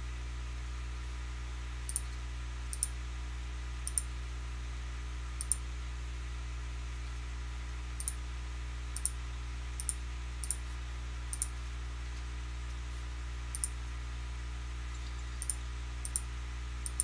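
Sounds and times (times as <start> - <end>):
steady low hum: 0.0 - 17.0
computer mouse clicking: 1.9 - 2.1, 2.7 - 2.9, 3.9 - 4.1, 5.4 - 5.6, 8.0 - 8.2, 9.0 - 9.2, 9.8 - 10.6, 11.3 - 11.5, 13.5 - 13.7, 14.9 - 17.0.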